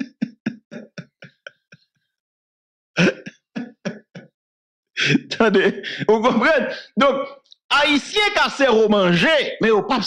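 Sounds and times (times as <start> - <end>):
man laughing: 0.0 - 2.0, 3.0 - 4.4.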